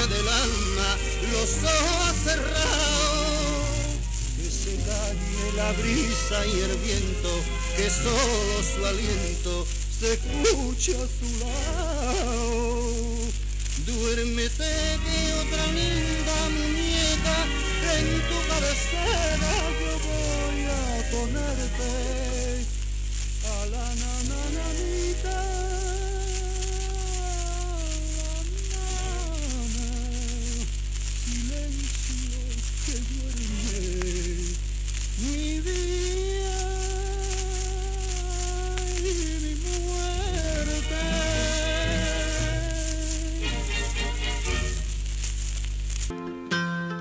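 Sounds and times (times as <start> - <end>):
low hum: 0.0 - 46.1
record crackle and hiss: 0.0 - 47.0.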